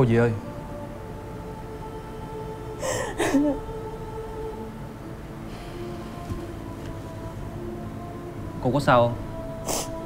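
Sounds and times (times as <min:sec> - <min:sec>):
soft sustained background music: 0:00.0 - 0:10.0.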